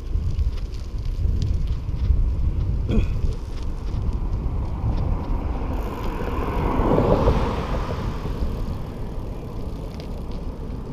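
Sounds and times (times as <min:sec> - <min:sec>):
tyre noise on rough asphalt: 0:00.0 - 0:10.9
wind rumbling on microphone: 0:00.0 - 0:10.9
car passing: 0:03.4 - 0:10.9.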